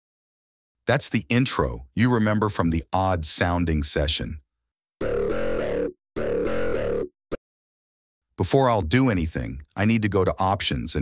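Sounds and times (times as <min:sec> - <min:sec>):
polyphonic music loops: 0:05.0 - 0:07.1.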